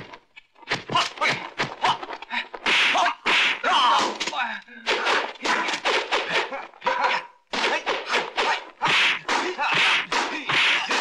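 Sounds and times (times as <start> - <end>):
whacks and thuds of blows: 0.0 - 11.0
fighters shouting and grunting: 0.7 - 11.0.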